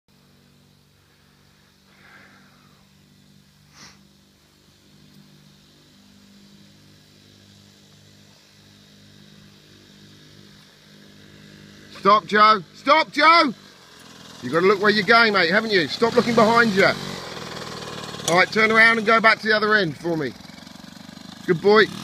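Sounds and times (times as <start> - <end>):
two-stroke minibike engine running: 0.2 - 22.0.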